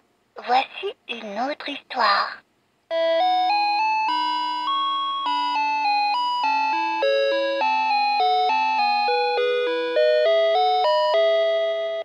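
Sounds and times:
toy playing electronic bell melody: 2.9s - 12.0s.

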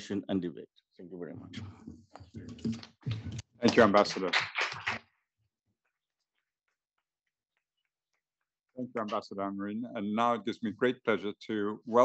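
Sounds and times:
man speaking: 0.0s - 1.8s, 3.6s - 4.4s, 8.8s - 12.0s.

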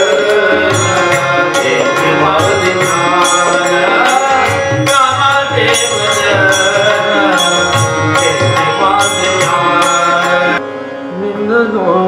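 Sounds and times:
man singing devotional song: 0.0s - 12.0s
tabla: 0.0s - 12.0s.

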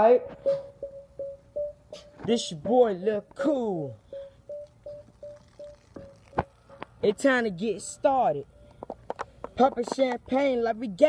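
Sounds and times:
faint short tone repeating: 0.4s - 2.2s, 4.1s - 6.4s.

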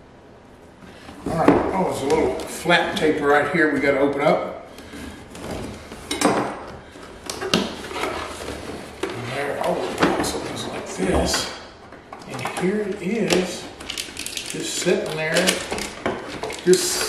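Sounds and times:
cardboard scraping and rustling: 4.8s - 6.1s, 6.8s - 11.4s.

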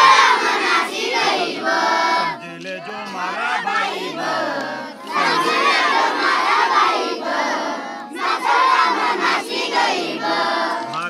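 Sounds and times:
crowd of children shouting: 0.0s - 11.0s.

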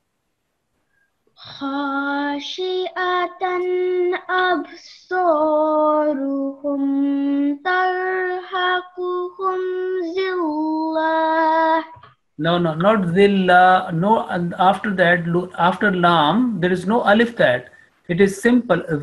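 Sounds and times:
person chanting a verse: 12.4s - 19.0s.

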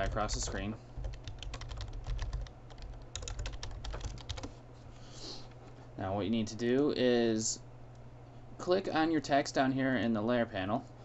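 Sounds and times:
typing on computer keyboard: 0.0s - 4.5s.

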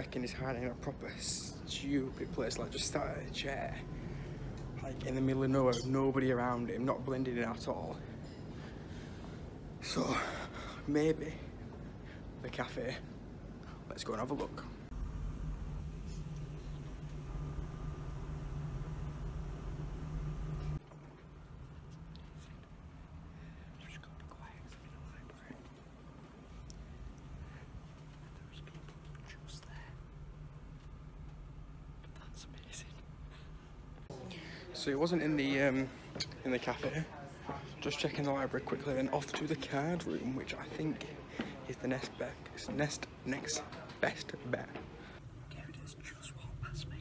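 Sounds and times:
steady low hum: 0.0s - 47.0s
low hum: 14.8s - 34.1s
faint whispering: 21.7s - 30.8s, 31.8s - 34.9s, 44.9s - 47.0s.

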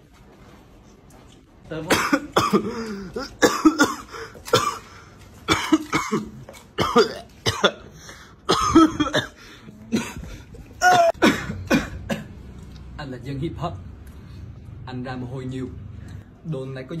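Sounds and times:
man coughing: 1.8s - 12.4s.

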